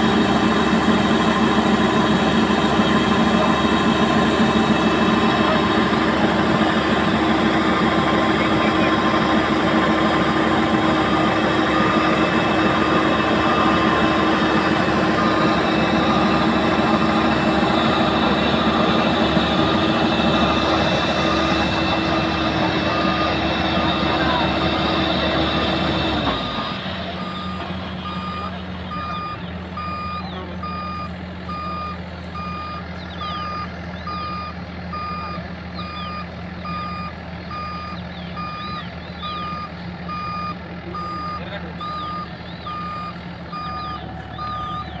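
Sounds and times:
combine harvester engine running: 0.0s - 45.0s
reversing alarm beeps: 11.6s - 18.0s, 19.5s - 45.0s.

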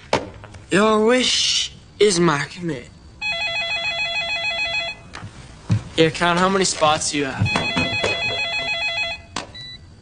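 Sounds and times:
telephone ringer warbling: 3.2s - 5.0s, 7.5s - 9.4s.

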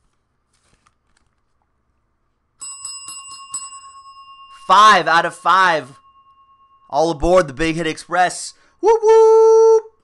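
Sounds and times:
small metal bell ringing: 2.6s - 8.2s.

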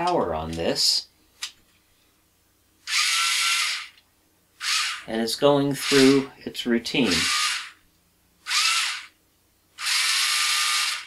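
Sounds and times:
small motors whirring: 2.9s - 4.0s, 4.6s - 5.0s, 5.8s - 6.3s, 7.1s - 7.8s, 8.4s - 9.1s, 9.8s - 11.0s.

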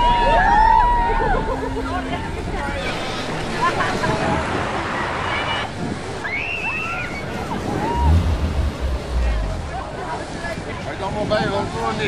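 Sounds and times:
water splashing: 1.4s - 10.9s.

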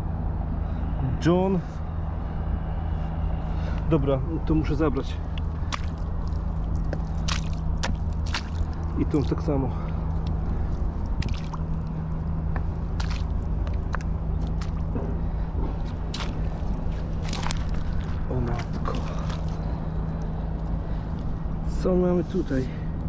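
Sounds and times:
steady low hum: 0.0s - 23.0s
boots squelching in mud: 5.1s - 21.4s
wet squishes and clicks: 5.1s - 21.4s.

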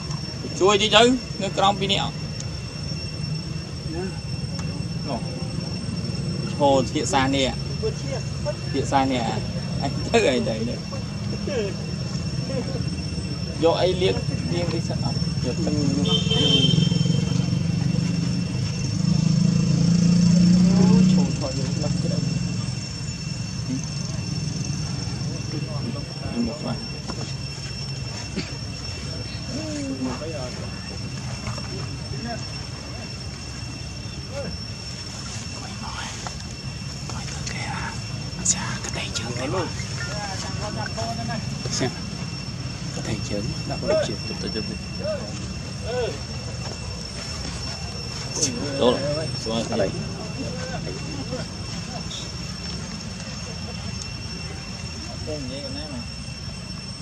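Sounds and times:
high-pitched tones: 0.0s - 57.0s.

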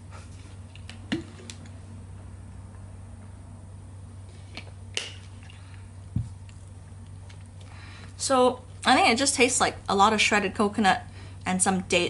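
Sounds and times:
steady low hum: 0.0s - 12.0s
chewing and swallowing: 6.4s - 7.7s.

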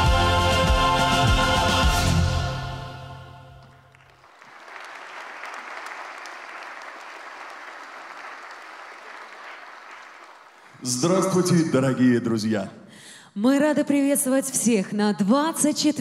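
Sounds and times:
audience applauding: 3.6s - 11.4s.

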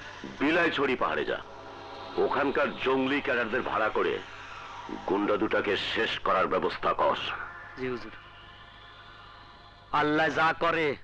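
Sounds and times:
man talking: 0.2s - 1.4s, 2.2s - 4.2s, 4.9s - 8.2s, 9.9s - 11.0s.

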